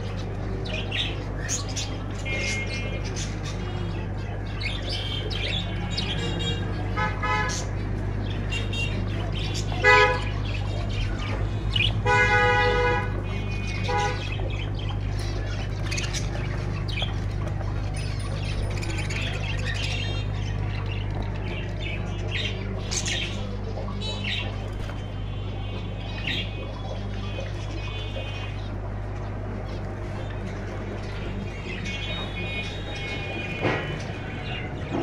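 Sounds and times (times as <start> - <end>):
finches and budgerigars chirping: 0.0 - 35.0
vehicle horn toots: 12.0 - 13.2.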